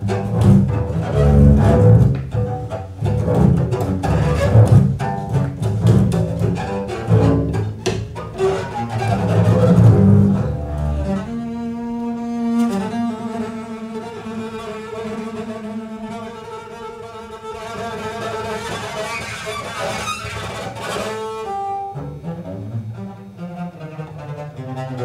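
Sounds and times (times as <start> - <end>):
bowed double bass: 0.0 - 25.0.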